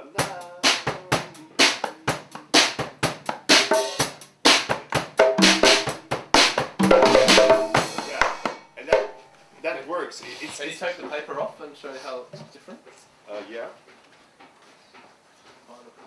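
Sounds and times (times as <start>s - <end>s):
drum kit played with sticks: 0.0s - 9.3s.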